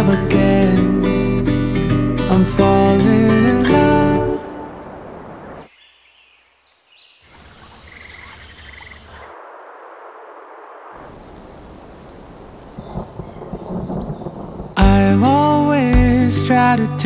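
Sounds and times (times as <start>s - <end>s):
rain: 3.6s - 5.7s, 8.1s - 15.9s
thunder rumbling: 4.3s - 5.7s, 9.3s - 16.2s.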